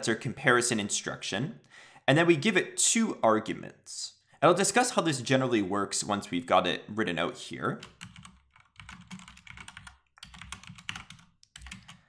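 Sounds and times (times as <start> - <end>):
computer keyboard typing: 7.8 - 12.0.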